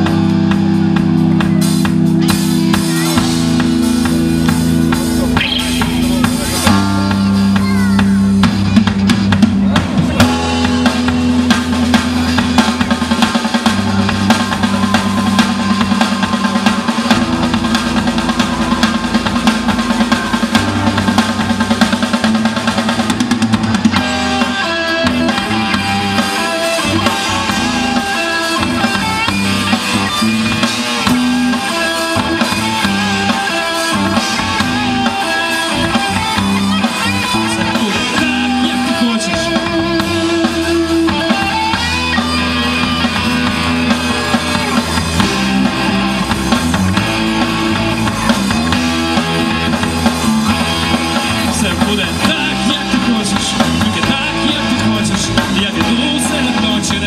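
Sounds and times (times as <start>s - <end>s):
drum kit: 0.0s - 57.0s
electric guitars: 0.0s - 57.0s.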